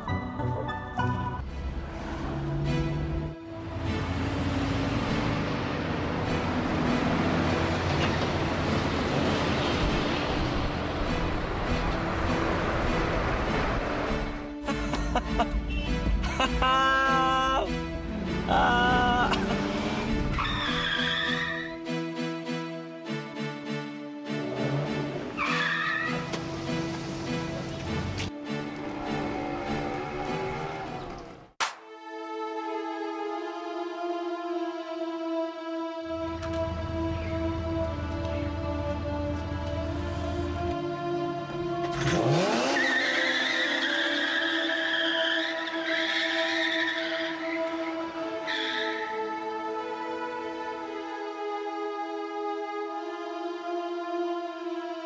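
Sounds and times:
background film music: 0.0 - 55.0
car tyres screeching: 18.1 - 21.8, 24.4 - 31.6, 41.9 - 49.4.

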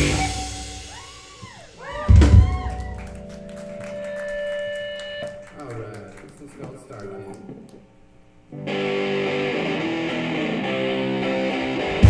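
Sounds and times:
electric guitar held tone: 8.5 - 12.0.

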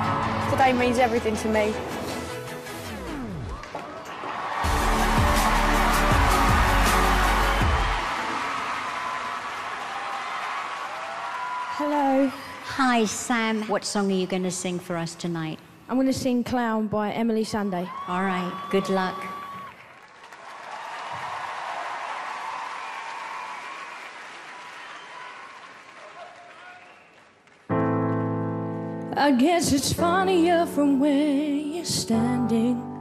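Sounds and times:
audience applauding: 3.4 - 13.1, 17.9 - 28.3.

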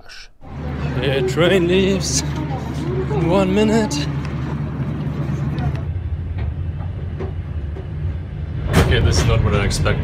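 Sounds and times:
train rumble from inside carriage: 0.5 - 10.0.

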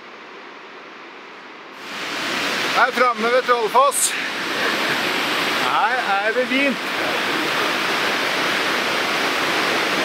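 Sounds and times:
waterfall rushing: 1.8 - 10.0.

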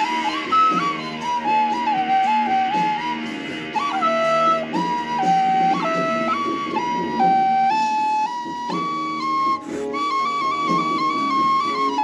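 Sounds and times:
lower accompanying music: 0.0 - 12.0
recorder playing slow melody: 0.0 - 12.0.

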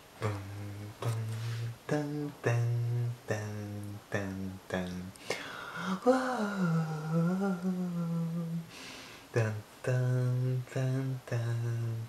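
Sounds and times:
man humming: 0.2 - 12.0
short breath: 5.2 - 6.0, 8.7 - 9.3.

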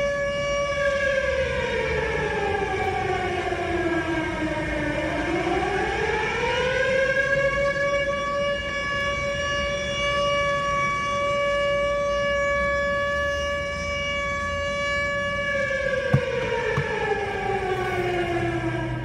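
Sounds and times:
mechanical siren: 0.0 - 19.0.

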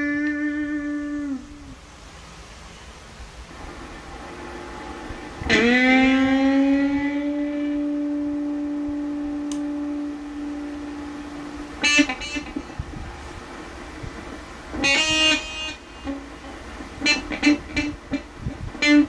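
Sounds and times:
electric guitar lead: 0.0 - 2.5, 3.4 - 19.0.

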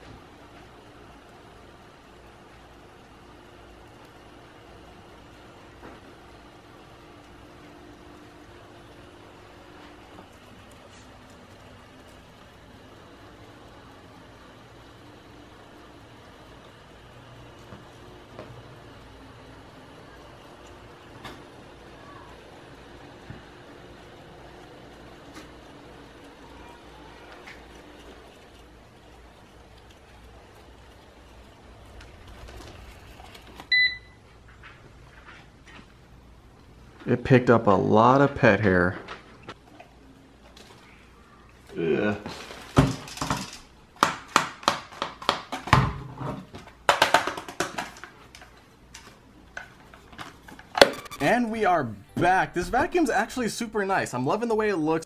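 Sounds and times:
short high beep: 33.7 - 34.2.

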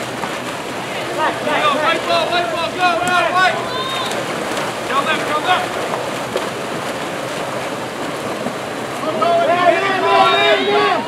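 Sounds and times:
water splashing from swimmers: 0.0 - 11.0.

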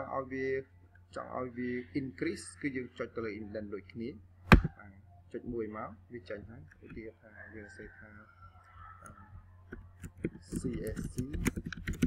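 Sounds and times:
steady low hum: 0.0 - 12.0
computer keyboard keys clicking: 9.7 - 12.0.

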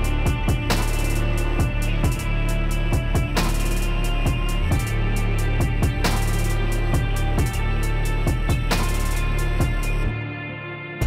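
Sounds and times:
theme music with steady beat: 0.0 - 11.0.

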